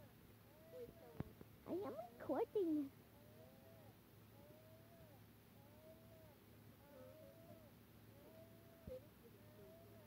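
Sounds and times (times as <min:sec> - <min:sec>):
faint cat meowing: 0:00.5 - 0:01.2, 0:03.2 - 0:10.0.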